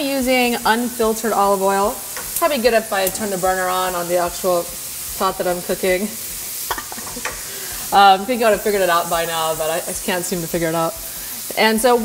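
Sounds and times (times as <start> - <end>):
food sizzling in a pan: 0.0 - 12.0.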